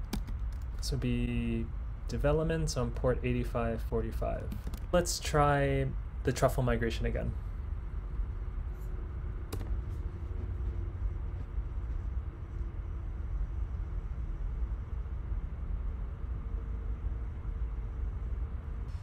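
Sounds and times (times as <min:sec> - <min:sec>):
faint hum: 0:00.0 - 0:19.0
low room rumble: 0:00.0 - 0:19.0.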